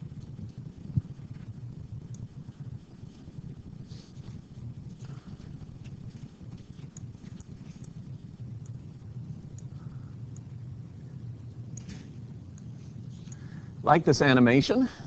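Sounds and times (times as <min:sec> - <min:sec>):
low steady room rumble: 0:00.0 - 0:15.0
faint scattered clicks: 0:04.9 - 0:10.6, 0:11.5 - 0:13.6.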